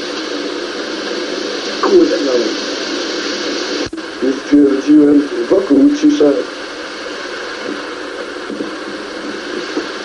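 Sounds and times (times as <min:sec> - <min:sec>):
tape hiss: 0:00.0 - 0:10.0.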